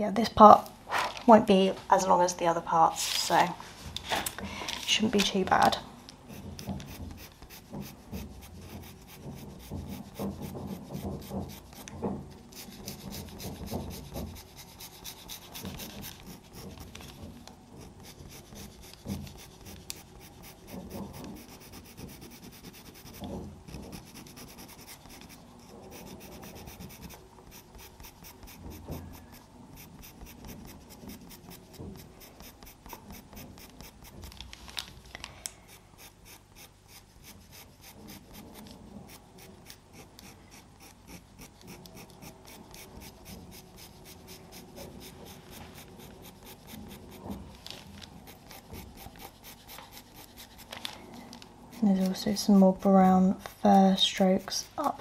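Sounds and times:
pastel pencil scratching on paper: 4.9s - 34.6s, 35.6s - 55.0s.

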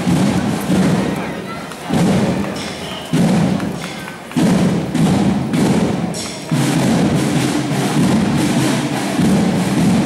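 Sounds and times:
parade drums beating: 0.0s - 10.0s.

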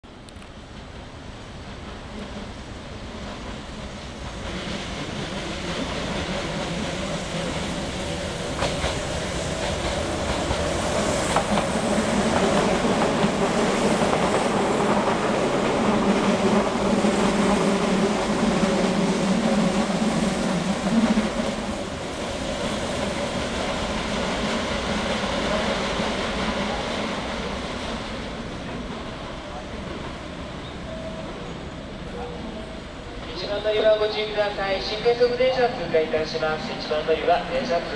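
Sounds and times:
train rumbling past: 0.1s - 37.9s
train wheel noise: 0.1s - 37.9s.

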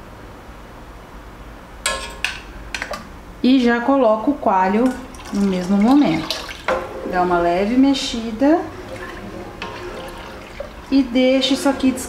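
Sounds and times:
kitchen room tone: 1.4s - 12.0s.

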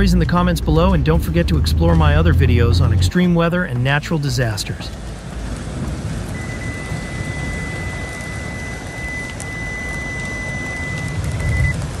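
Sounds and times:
heavy rain pouring: 0.0s - 12.0s
steady low rumble: 0.0s - 12.0s.

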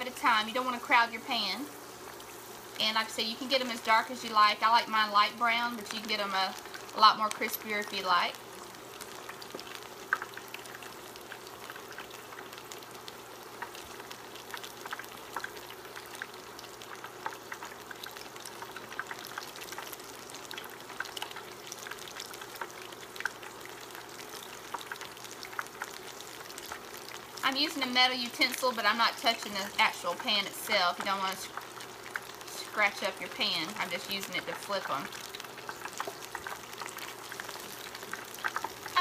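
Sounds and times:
battered food deep-frying in oil: 0.0s - 39.0s.

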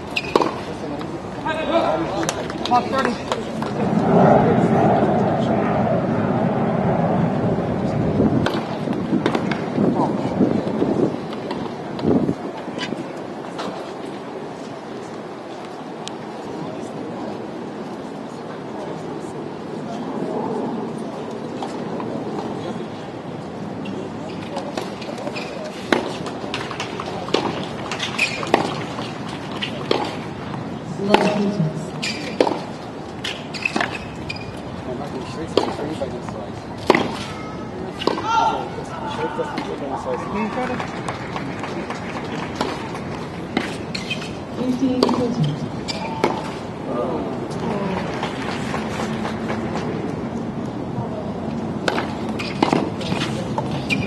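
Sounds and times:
murmur of spectators: 0.0s - 54.0s
tennis ball struck by racket: 0.2s - 0.7s, 25.8s - 30.2s, 31.0s - 34.0s, 35.5s - 35.8s, 36.8s - 37.3s, 51.8s - 54.0s.

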